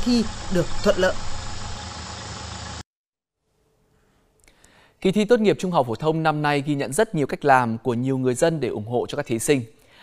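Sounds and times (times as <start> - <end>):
low hum: 0.0 - 2.8.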